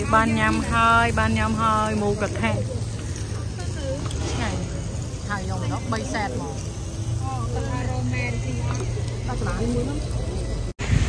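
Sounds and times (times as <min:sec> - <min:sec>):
people talking: 0:00.0 - 0:10.8.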